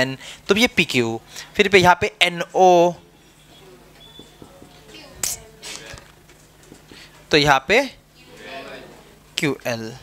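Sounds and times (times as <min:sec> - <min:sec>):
marker tapping whiteboard: 0:04.0 - 0:05.4.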